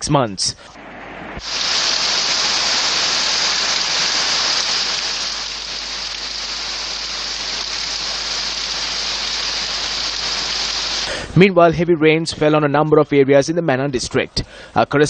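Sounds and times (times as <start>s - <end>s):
heavy rain pouring: 0.7s - 11.4s.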